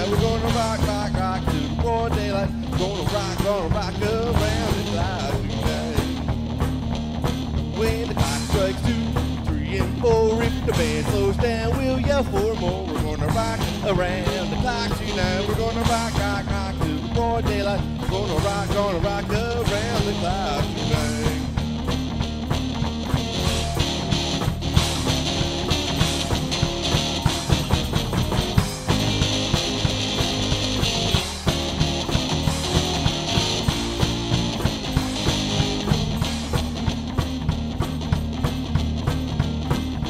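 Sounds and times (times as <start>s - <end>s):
bass line: 0.0s - 40.0s
electric guitar playing lead: 0.0s - 40.0s.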